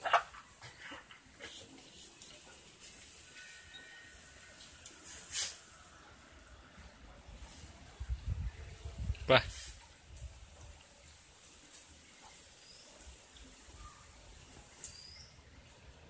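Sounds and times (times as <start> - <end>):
dog snuffling and rustling plants: 4.9 - 5.8.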